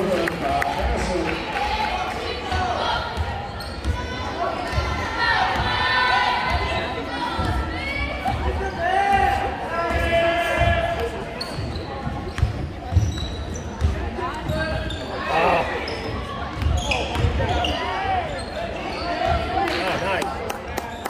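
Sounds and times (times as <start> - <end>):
spectators talking: 0.0 - 21.0
sneakers squeaking: 1.9 - 20.0.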